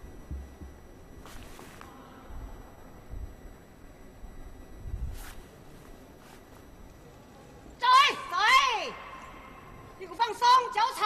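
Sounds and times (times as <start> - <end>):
woman shouting: 7.8 - 9.2, 10.0 - 11.0.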